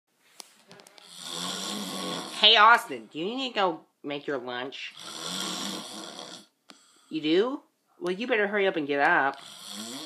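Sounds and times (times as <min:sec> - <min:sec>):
man snoring: 0:01.0 - 0:02.5, 0:04.9 - 0:07.0, 0:09.4 - 0:10.0.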